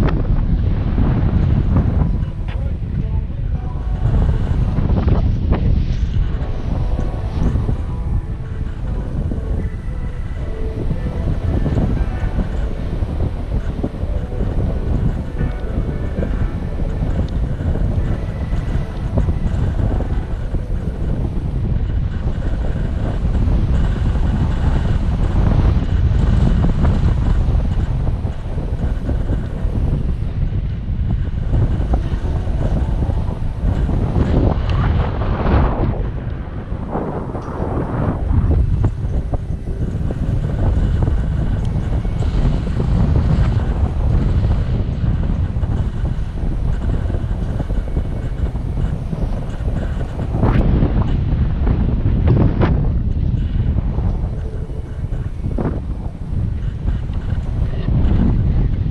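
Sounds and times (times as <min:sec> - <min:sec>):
wind buffeting microphone: 0:00.0 - 0:58.9.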